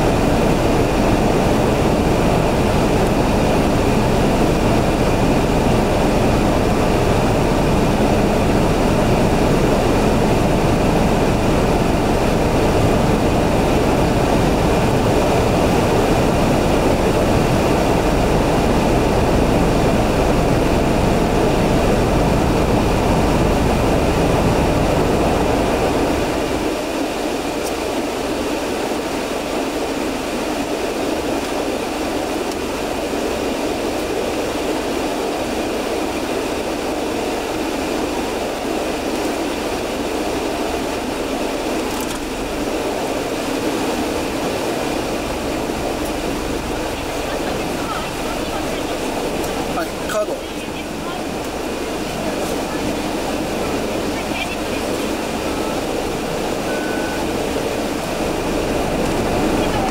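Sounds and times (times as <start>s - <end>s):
car engine idling: 0.0s - 26.7s, 40.0s - 59.9s
broad cabin hum: 0.0s - 59.9s.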